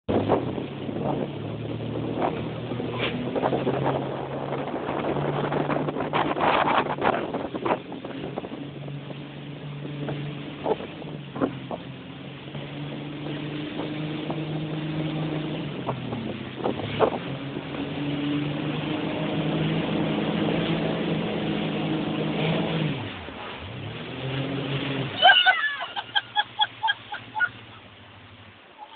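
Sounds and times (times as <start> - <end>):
wind and water noise: 0.0 - 28.9
motorboat engine running: 0.1 - 28.9.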